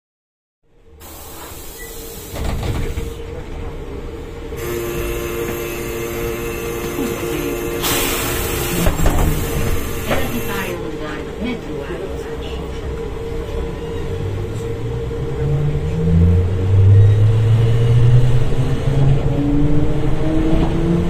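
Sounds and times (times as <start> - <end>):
trolleybus electric whine: 0.8 - 21.0
burst of hiss: 1.0 - 2.5, 7.8 - 10.1.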